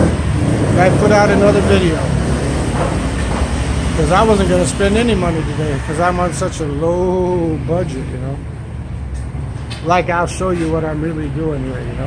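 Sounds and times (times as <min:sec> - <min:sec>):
motorbikes and cars passing: 0:00.0 - 0:12.0.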